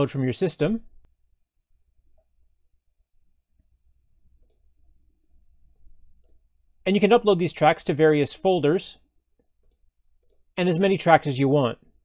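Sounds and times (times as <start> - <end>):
person speaking: 6.8 - 9.1, 10.5 - 12.0.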